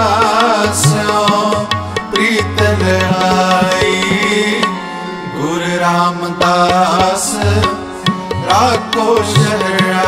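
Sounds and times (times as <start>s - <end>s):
tabla strokes: 0.0s - 5.2s, 6.4s - 10.0s
harmonium drone: 0.0s - 10.0s.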